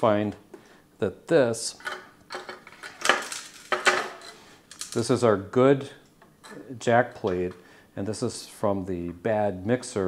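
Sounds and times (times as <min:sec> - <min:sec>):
metal clinks and knocks: 0:01.8 - 0:05.0.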